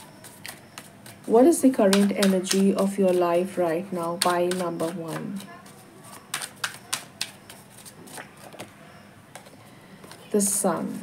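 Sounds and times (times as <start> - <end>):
cards being shuffled: 0.0 - 3.3, 4.1 - 8.7.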